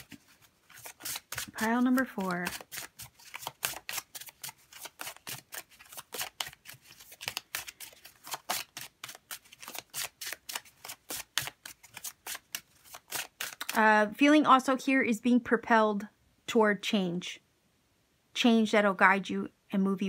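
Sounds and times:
cards being shuffled: 0.0 - 13.8.

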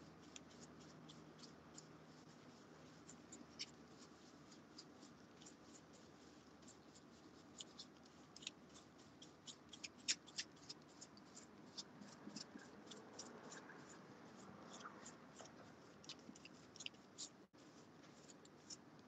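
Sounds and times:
paintbrush sweeping over resin: 0.0 - 19.0.

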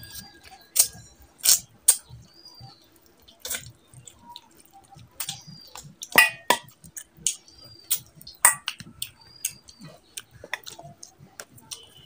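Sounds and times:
squelchy chewing: 0.0 - 12.0.

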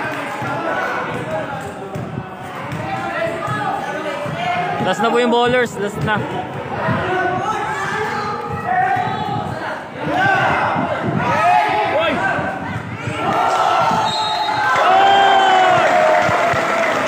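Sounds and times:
crowd shouting: 10.0 - 17.0.

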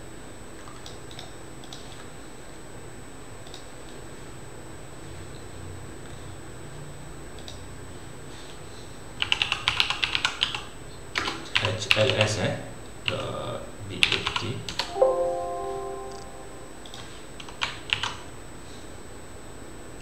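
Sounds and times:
rapid keyboard typing: 9.2 - 12.3, 14.0 - 14.9
short alert chime: 14.9 - 17.0.

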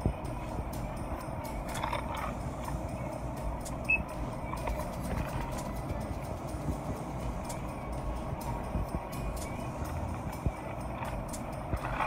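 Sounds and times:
background hum and rumble: 0.0 - 12.0
short high electronic beep: 3.9 - 4.1.

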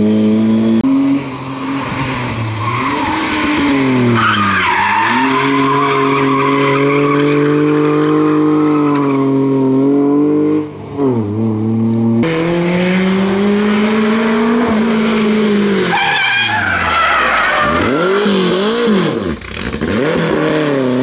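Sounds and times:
car engines at high revs: 0.0 - 21.0
tyres squealing: 1.3 - 9.3, 13.7 - 18.6.

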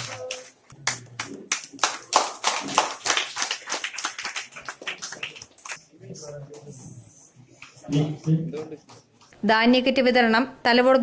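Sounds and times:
people clapping: 0.0 - 5.9, 7.6 - 9.4.

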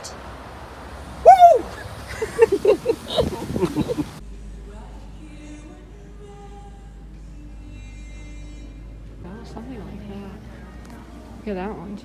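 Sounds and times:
faint outdoor background noise: 0.0 - 12.0.

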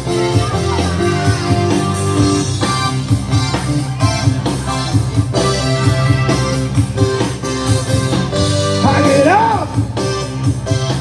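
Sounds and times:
band with keyboard bass and beat: 0.0 - 11.0.

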